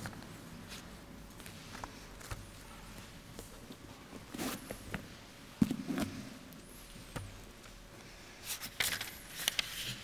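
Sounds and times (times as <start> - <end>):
paper rustling: 8.5 - 10.0.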